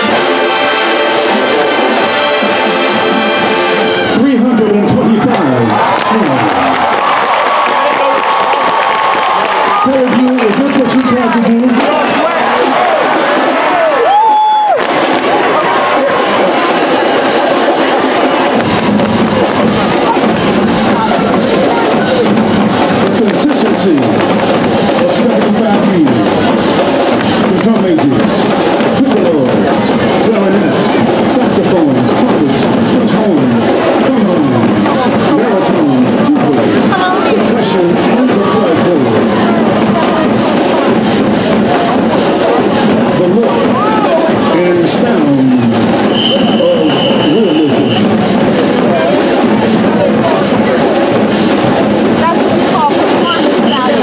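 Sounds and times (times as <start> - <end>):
crowd shouting and talking: 0.0 - 54.0
marching band playing: 0.0 - 54.0.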